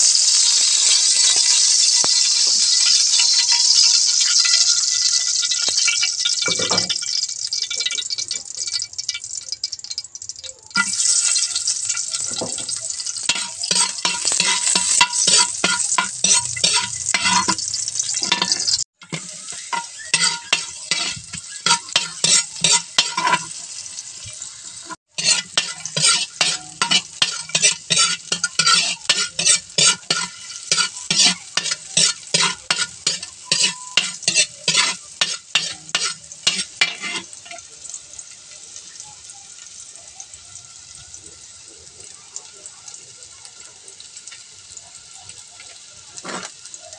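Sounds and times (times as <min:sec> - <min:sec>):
onion and garlic sizzling in oil: 0:00.0 - 0:46.9
metal spatula scraping a wok: 0:00.2 - 0:07.1, 0:10.8 - 0:37.7, 0:46.2 - 0:46.7.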